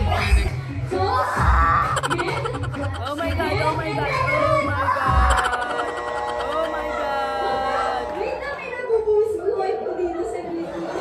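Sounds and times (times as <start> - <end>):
person singing with music: 0.0 - 8.2.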